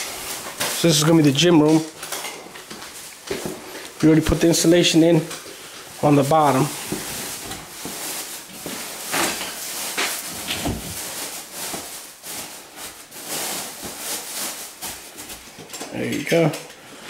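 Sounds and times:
rustling: 0.0 - 17.0.

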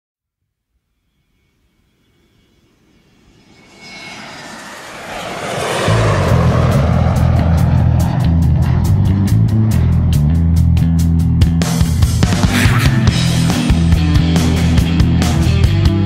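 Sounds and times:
jet airplane roar: 1.1 - 16.0
heavy rock bass and guitar riff: 6.2 - 16.0.

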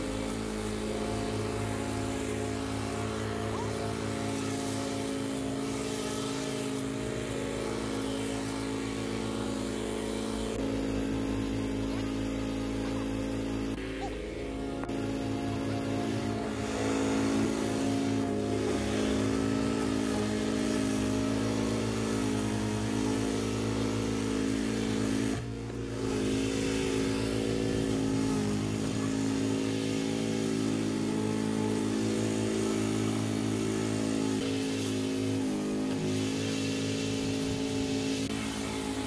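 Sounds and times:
lawn mower engine running: 0.0 - 39.0.

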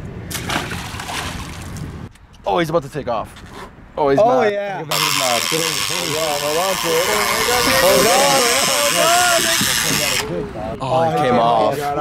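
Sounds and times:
fishing reel drag hissing: 4.9 - 10.3.

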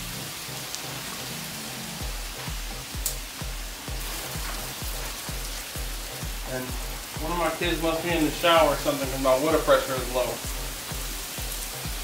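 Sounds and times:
background music with steady beat: 0.0 - 12.0
water hissing on hot grates: 0.0 - 12.0.

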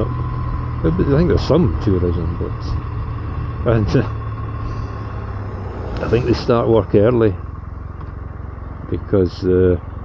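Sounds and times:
motorcycle engine cruising: 0.0 - 10.0
road and wind noise: 0.0 - 10.0.

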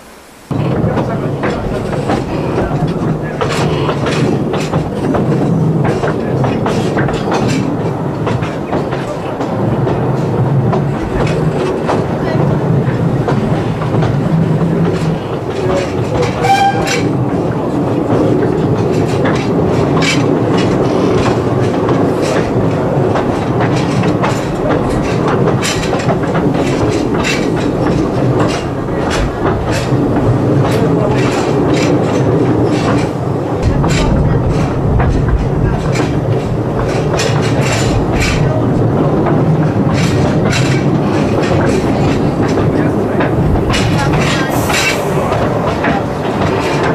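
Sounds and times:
railway carriage rumbling: 0.0 - 46.9
wheel clicks over rail joints: 0.6 - 46.9.

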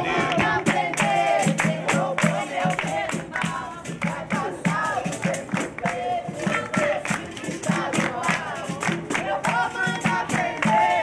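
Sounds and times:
group singing: 0.0 - 11.0
hand drum rhythm: 0.0 - 11.0
hand-clapping: 0.2 - 11.0.

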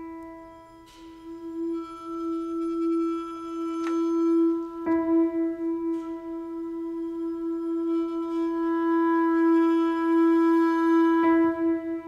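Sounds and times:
long held instrumental note: 0.0 - 12.0.

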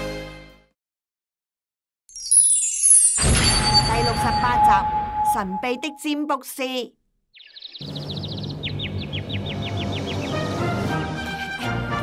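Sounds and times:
bird chirping: 7.3 - 10.6.

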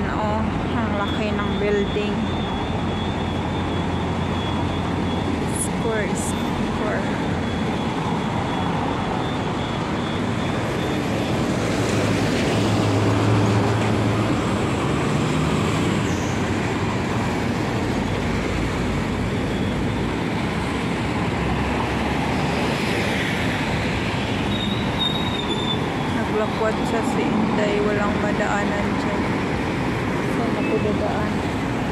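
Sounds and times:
heavy vehicle engine hum: 0.0 - 31.9
passing traffic: 0.0 - 31.9.

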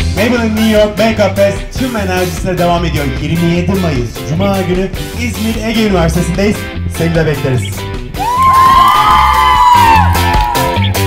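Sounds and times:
rock music: 0.0 - 11.0
people cheering and whooping: 8.2 - 11.0.

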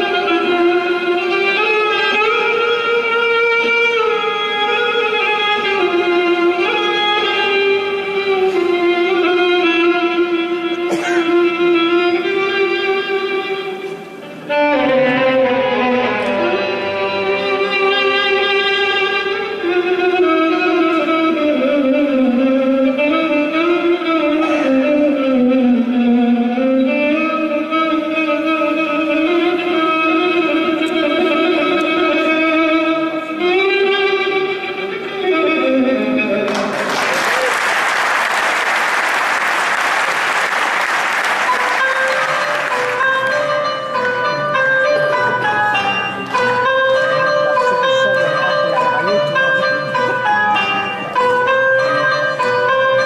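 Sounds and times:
orchestra led by violins: 0.0 - 22.2, 40.0 - 53.0
audience applause: 36.5 - 43.4.

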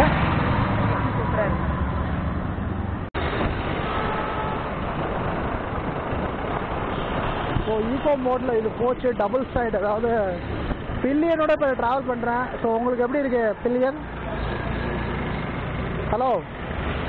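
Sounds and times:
road traffic noise: 0.0 - 17.0.

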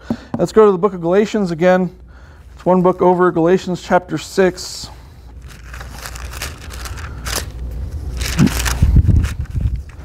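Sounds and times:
thin pages rustling: 5.4 - 10.0.

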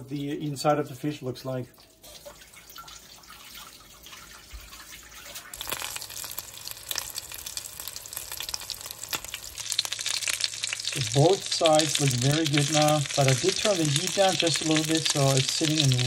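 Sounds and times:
fish sizzling in hot oil: 5.1 - 16.0.

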